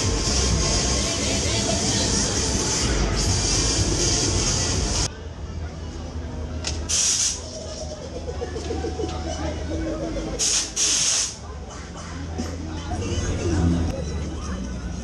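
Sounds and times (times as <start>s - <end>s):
low fairground hum: 0.0s - 15.0s
compressed air hissing: 6.9s - 7.4s, 10.4s - 11.4s.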